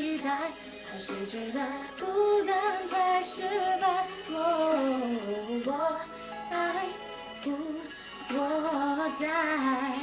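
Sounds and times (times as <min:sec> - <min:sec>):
woman singing pop: 0:00.0 - 0:10.0.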